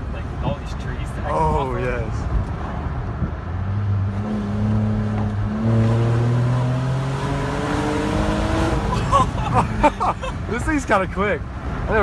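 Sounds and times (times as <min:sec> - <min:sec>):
car engine accelerating hard: 0:03.7 - 0:10.0.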